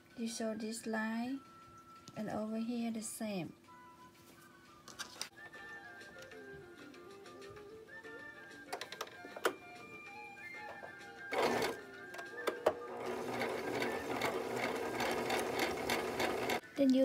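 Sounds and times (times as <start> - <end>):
sewing machine stitching: 11.3 - 11.8, 12.5 - 16.6.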